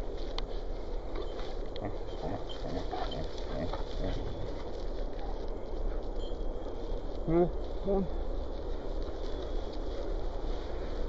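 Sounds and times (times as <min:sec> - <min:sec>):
paws padding on grass: 0:00.0 - 0:11.0
steady low rumble: 0:00.0 - 0:11.0.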